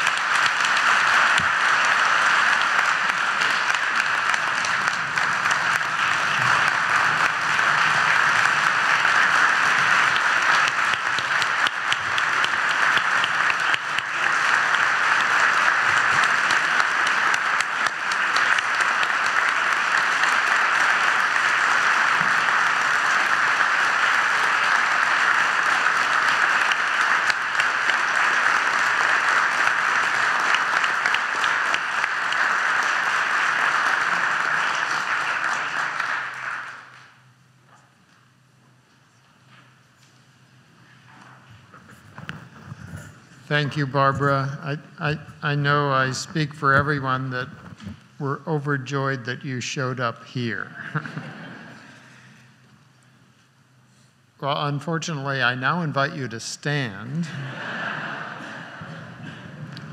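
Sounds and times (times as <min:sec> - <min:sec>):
audience applause: 0:00.0 - 0:37.2, 0:57.2 - 0:59.9.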